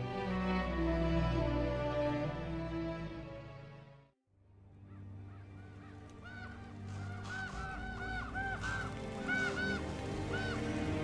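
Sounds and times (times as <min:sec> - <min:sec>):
soft background music: 0:00.0 - 0:11.0
crows cawing: 0:04.8 - 0:11.0.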